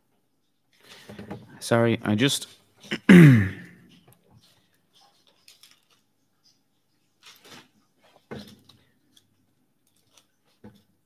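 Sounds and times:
pages rustling and clicking: 4.4 - 6.2, 7.2 - 11.0.

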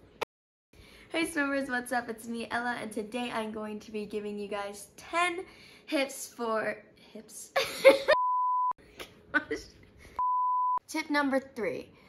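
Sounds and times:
high censor beep: 8.2 - 8.8, 10.2 - 10.8.

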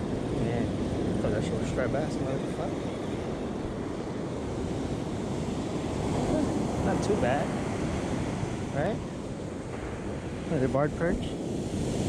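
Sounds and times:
ocean surf breaking on beach: 0.0 - 12.0
wind buffeting microphone: 0.0 - 12.0.

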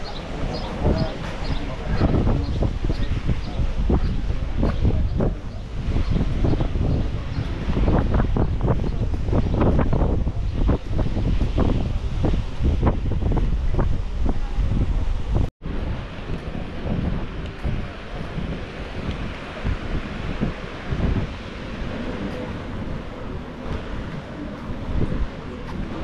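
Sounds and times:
small waves washing on beach: 0.0 - 26.0
wind buffeting microphone: 0.0 - 26.0.

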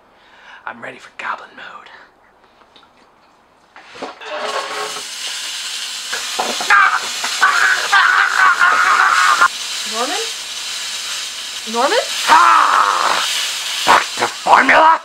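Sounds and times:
loud steady hiss: 4.0 - 15.0
man crying out strained: 6.7 - 9.5, 12.2 - 13.3.

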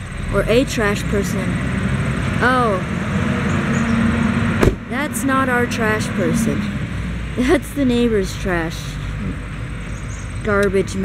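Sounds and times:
truck engine running: 0.0 - 11.0
sharp bang: 4.6 - 4.9.

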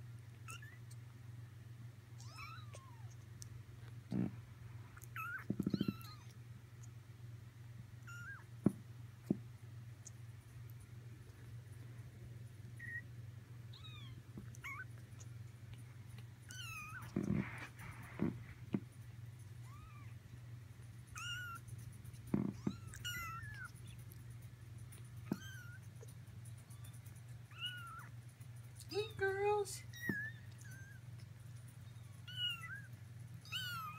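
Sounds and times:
kittens mewing: 5.0 - 6.4, 12.8 - 13.0, 13.7 - 15.3, 16.5 - 18.7, 21.1 - 21.7, 22.3 - 24.0, 32.0 - 33.9.

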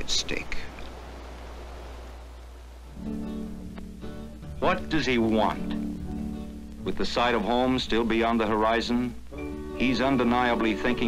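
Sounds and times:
steady film hiss: 0.0 - 11.0.

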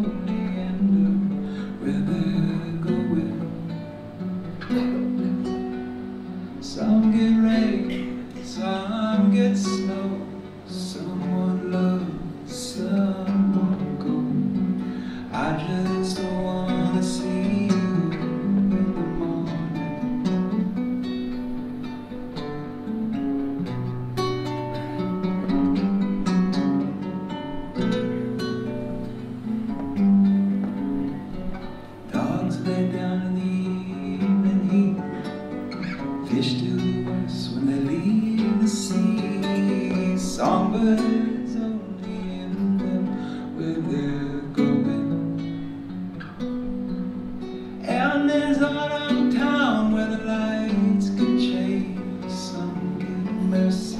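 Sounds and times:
acoustic guitar playing: 0.0 - 53.9.

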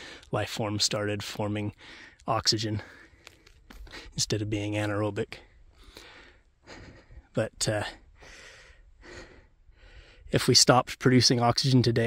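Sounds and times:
man breathing softly: 0.0 - 0.3, 1.8 - 2.2, 2.8 - 4.2, 5.5 - 10.4.

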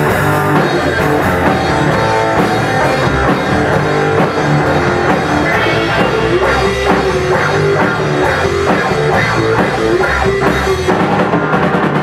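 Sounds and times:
drum beat: 0.0 - 11.1
electric guitars: 0.0 - 12.0.

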